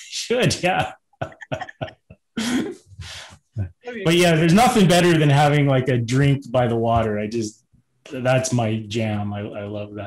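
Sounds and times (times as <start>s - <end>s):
person laughing: 0.6s - 3.2s.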